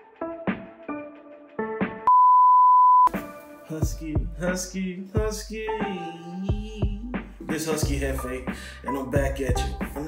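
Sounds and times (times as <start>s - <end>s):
test-card beep tone: 2.1s - 3.1s.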